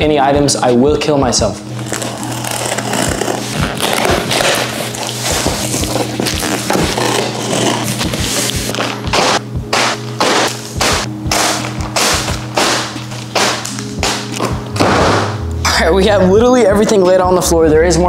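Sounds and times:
background music: 0.0 - 18.0
cardboard flaps tearing: 1.8 - 15.0
knife slicing packing tape: 1.8 - 15.0.

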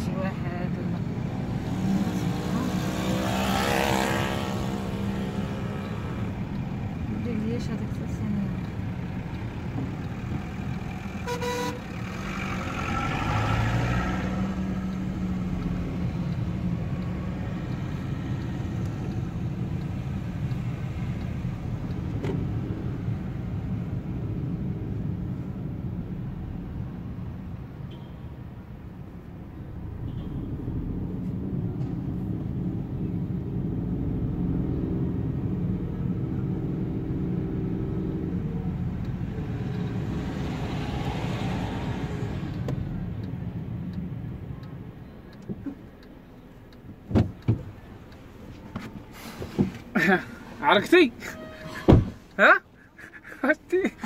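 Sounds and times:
bus passing: 0.0 - 27.8, 28.4 - 54.0
car engine and road noise: 0.0 - 54.0
car horn toot: 11.2 - 11.9, 51.2 - 52.2.

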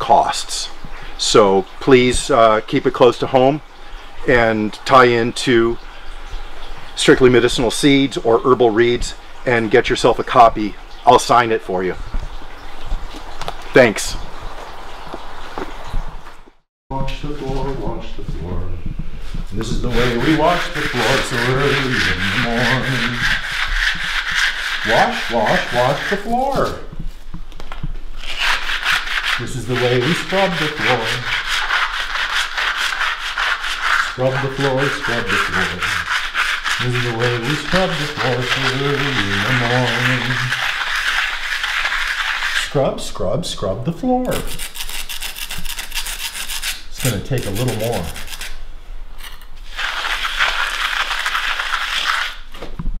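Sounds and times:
scrubbing on concrete floor: 19.2 - 27.3, 28.2 - 43.1, 44.3 - 48.6, 49.2 - 52.8.

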